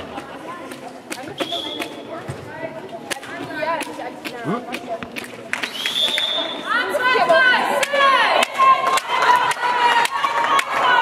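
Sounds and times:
voices calling and chatting: 0:00.0 - 0:11.0
referee whistle: 0:01.4 - 0:02.0, 0:05.7 - 0:06.7.

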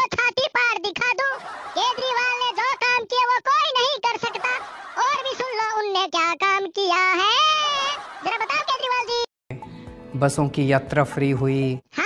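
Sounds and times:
high-pitched cartoon voice singing: 0:00.0 - 0:09.3.

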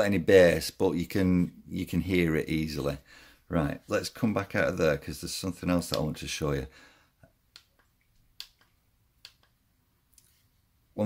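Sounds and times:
remote control buttons clicking: 0:07.5 - 0:09.6.

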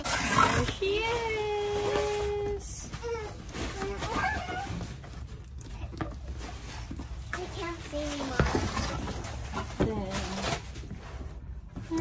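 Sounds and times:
toy package being handled: 0:00.0 - 0:11.6
knocks and cardboard scraping: 0:05.9 - 0:12.0.

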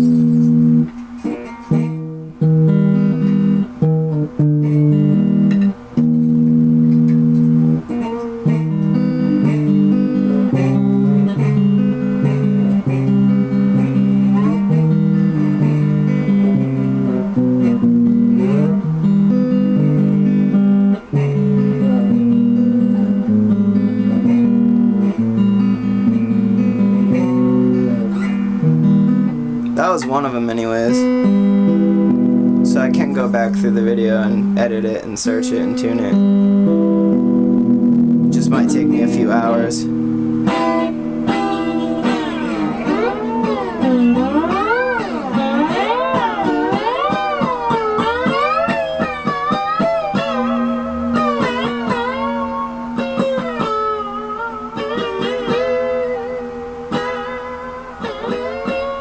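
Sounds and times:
guitar chords and sliding notes: 0:00.0 - 0:59.0.

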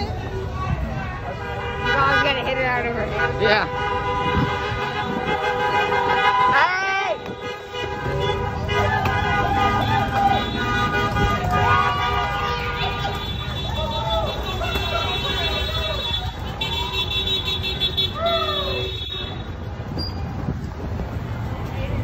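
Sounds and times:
voices calling out: 0:00.0 - 0:20.4
slow traffic rumble: 0:00.0 - 0:22.0
car horns honking: 0:01.3 - 0:19.7.

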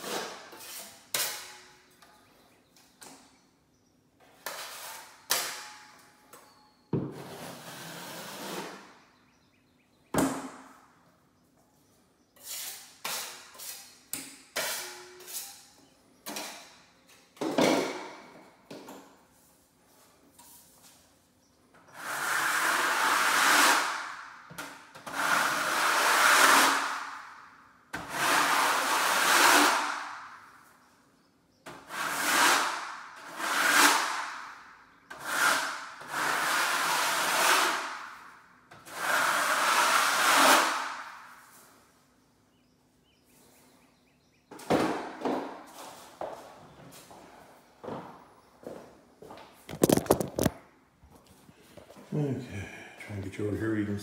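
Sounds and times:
drywall knife scraping compound: 0:00.0 - 0:01.8, 0:04.2 - 0:05.8, 0:07.0 - 0:09.0, 0:12.4 - 0:16.7, 0:21.8 - 0:27.3, 0:28.0 - 0:30.4, 0:31.7 - 0:41.7.

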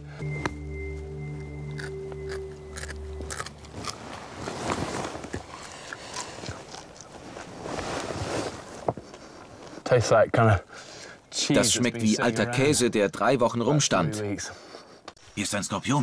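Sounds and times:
background music chord: 0:00.0 - 0:03.8
man chewing crunchy food: 0:01.6 - 0:07.6.

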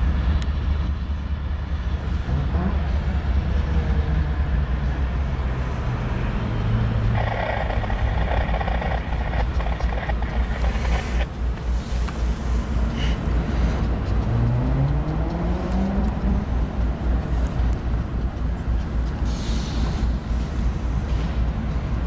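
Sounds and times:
diesel locomotives running: 0:00.0 - 0:22.0.

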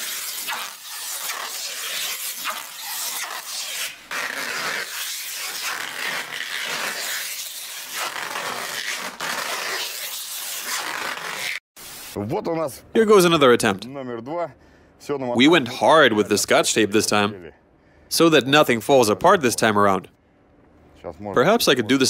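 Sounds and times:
tape peeling off roll: 0:00.0 - 0:11.6.

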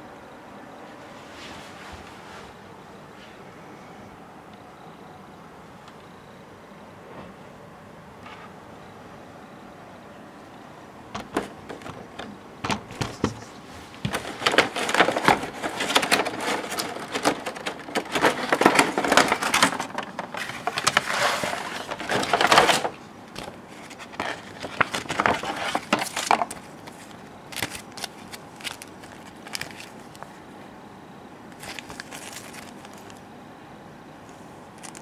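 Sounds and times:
plastic packaging crinkling: 0:11.2 - 0:30.4, 0:31.5 - 0:33.2, 0:34.3 - 0:35.0.

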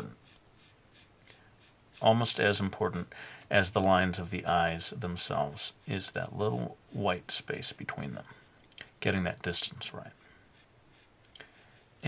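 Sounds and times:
pencil scratching on paper: 0:00.0 - 0:03.0, 0:09.6 - 0:12.0.

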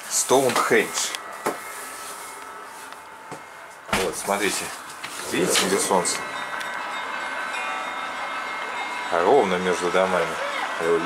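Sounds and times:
faint sustained ringing tones: 0:00.0 - 0:11.0
outdoor city background: 0:00.0 - 0:11.0.

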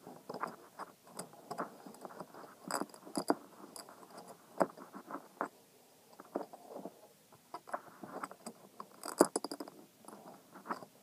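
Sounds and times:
metal clicks and scrapes: 0:00.1 - 0:05.5, 0:07.6 - 0:10.9.

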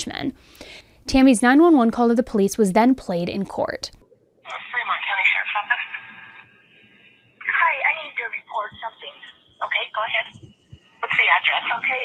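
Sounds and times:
person speaking over telephone: 0:04.5 - 0:06.4, 0:07.4 - 0:10.4, 0:11.0 - 0:12.0.

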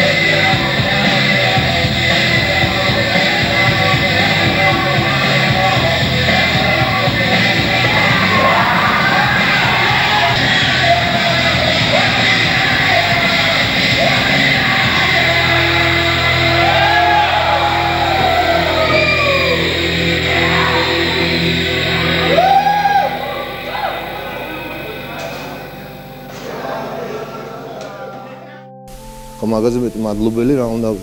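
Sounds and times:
rock music with yelled vocals: 0:00.0 - 0:26.4.

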